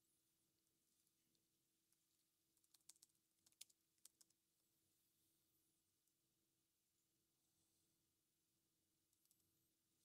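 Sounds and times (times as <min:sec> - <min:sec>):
computer keyboard typing: 0:02.6 - 0:04.4.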